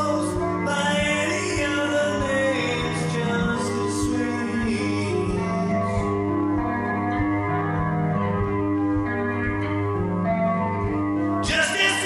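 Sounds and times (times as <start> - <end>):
drums: 0.0 - 9.2
bass guitar: 0.0 - 12.0
electric guitar sustained chords: 0.0 - 12.0.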